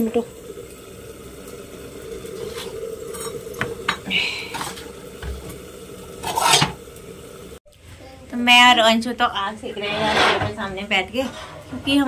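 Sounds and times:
metal utensils clinking on griddle: 0:06.2 - 0:06.8.

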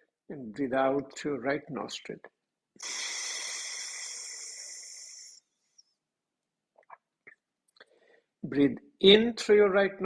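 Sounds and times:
man exhaling through nose: 0:02.8 - 0:05.5.

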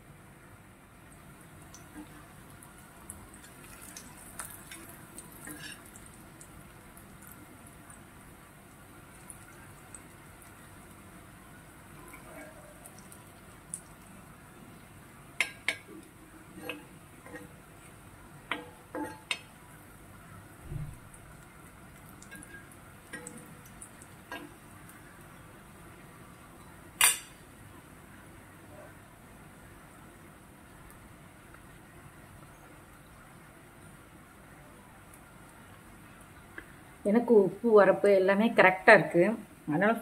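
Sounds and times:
frying sizzle: 0:00.0 - 0:40.0.

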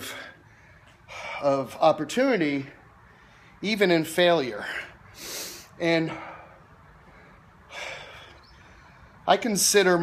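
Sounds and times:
man drawing a breath: 0:05.1 - 0:09.1.

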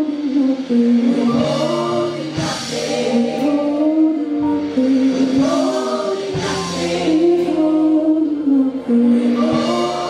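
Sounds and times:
women singing gospel together: 0:00.0 - 0:10.0.

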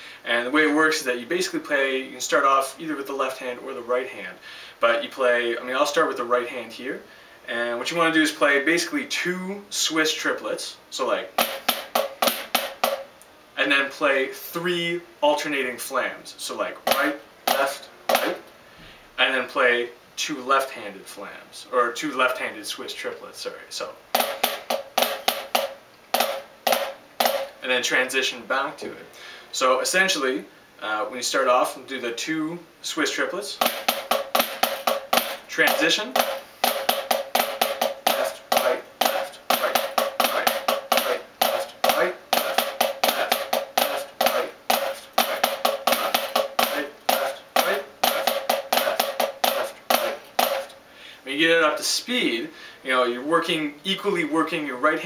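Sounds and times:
drumsticks striking a practice pad: 0:11.4 - 0:13.1, 0:16.9 - 0:18.4, 0:24.2 - 0:27.6, 0:33.6 - 0:50.8.

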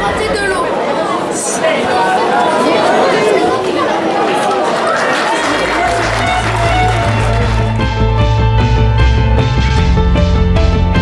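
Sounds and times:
crowd chattering: 0:00.0 - 0:08.0.

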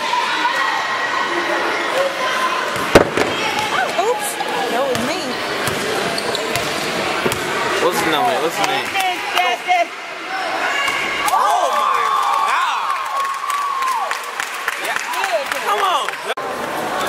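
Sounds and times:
spectators talking and calling out: 0:00.0 - 0:12.9
basketball bouncing on court floor: 0:02.8 - 0:03.8, 0:04.9 - 0:07.5
sharp bang: 0:02.8 - 0:03.8.

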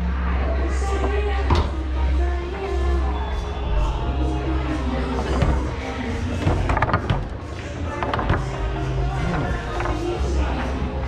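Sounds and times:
background music: 0:00.0 - 0:11.0
foosball clacks: 0:05.2 - 0:10.8.

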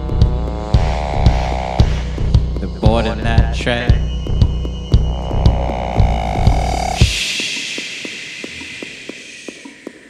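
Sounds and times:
low bass drone: 0:00.0 - 0:07.1
drum-machine kick thumping: 0:00.0 - 0:07.5
held synthesizer tones: 0:00.0 - 0:09.7.

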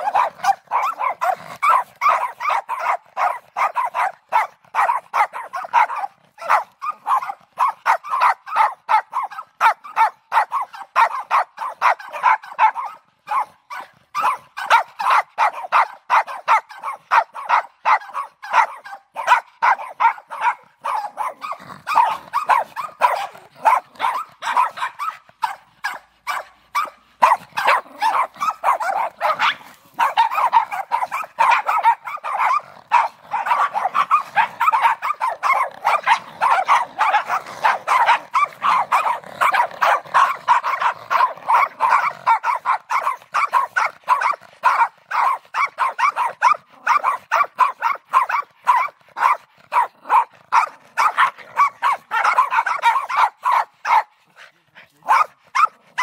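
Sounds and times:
dogs barking: 0:00.0 - 0:56.0.

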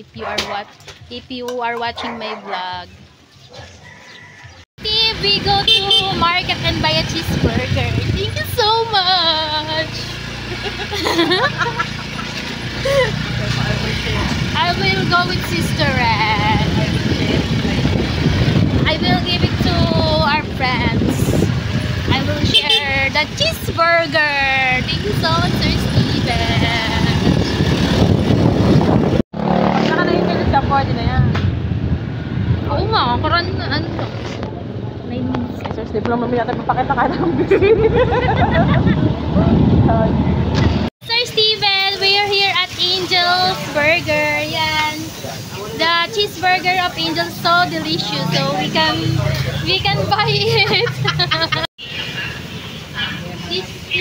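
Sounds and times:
woman's voice: 0:00.0 - 0:03.0, 0:04.8 - 0:10.2, 0:14.4 - 0:17.9, 0:18.8 - 0:21.5, 0:22.1 - 0:27.3, 0:29.8 - 0:31.3, 0:32.6 - 0:34.1, 0:35.1 - 0:37.6, 0:41.0 - 0:45.1, 0:45.7 - 0:51.7, 0:53.4 - 0:54.0
wind rushing over microphone: 0:04.1 - 0:10.0, 0:13.7 - 0:40.9
motorbike engine: 0:04.8 - 0:45.7
motor scooter engine running: 0:04.9 - 0:23.4.

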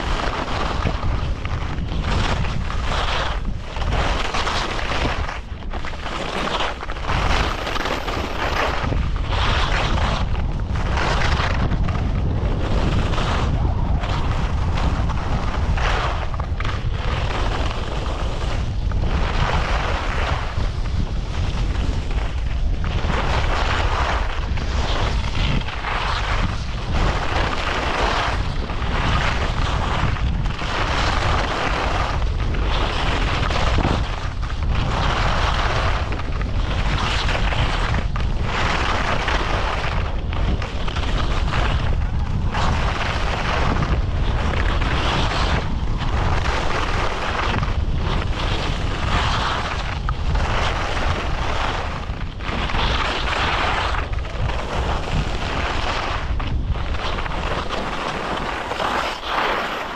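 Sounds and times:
skis scraping over snow: 0:00.0 - 0:59.9
wind rumble on microphone: 0:00.0 - 0:59.9.

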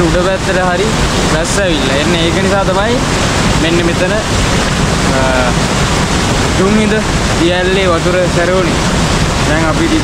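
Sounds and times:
waterfall rushing: 0:00.0 - 0:10.0.

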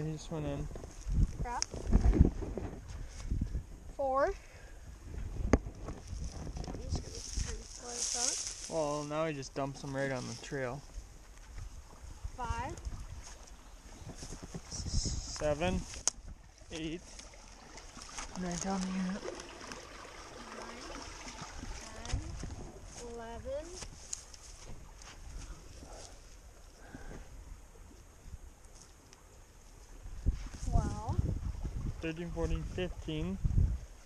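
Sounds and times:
steady outdoor hiss: 0:00.0 - 0:34.0
small ticks and rustles: 0:05.5 - 0:08.8, 0:09.8 - 0:12.0, 0:21.3 - 0:26.8, 0:27.9 - 0:30.7.

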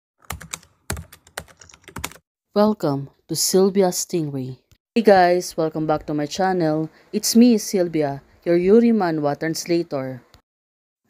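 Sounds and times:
computer keyboard typing: 0:00.2 - 0:02.2.

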